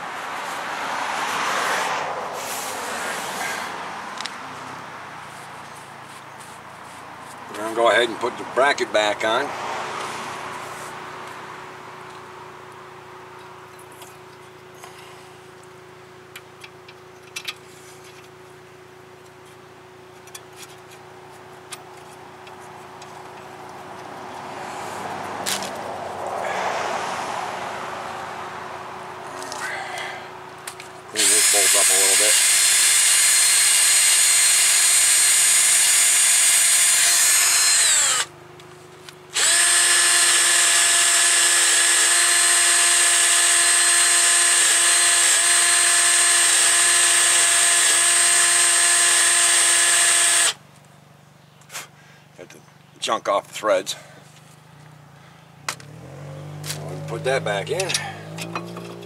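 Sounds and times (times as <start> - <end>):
cordless drill spinning wire brush: 31.1 - 38.3, 39.3 - 50.6.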